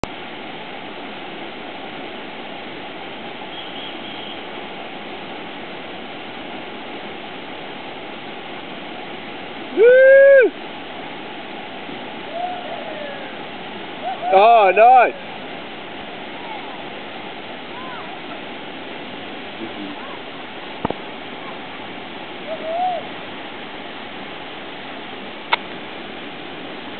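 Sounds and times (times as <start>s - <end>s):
waterfall rushing: 0.0s - 26.9s
person shouting: 9.8s - 10.5s, 22.5s - 23.1s.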